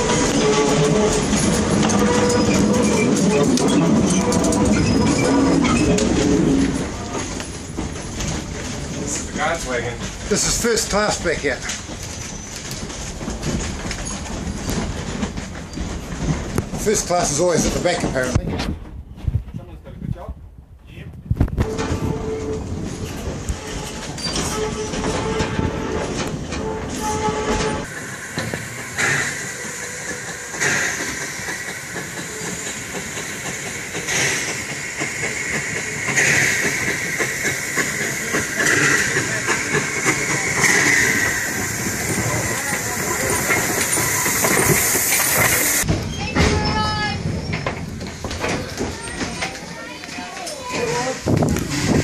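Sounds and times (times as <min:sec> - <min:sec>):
train carriage rattling: 0:00.0 - 0:52.0
steam locomotive hiss: 0:26.8 - 0:45.9.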